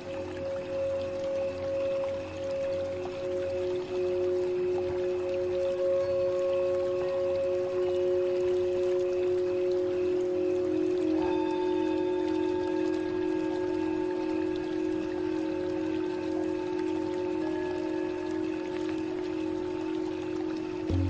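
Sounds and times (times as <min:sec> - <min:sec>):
singing bowls ringing: 0:00.0 - 0:21.0
trickle of water: 0:00.0 - 0:21.0.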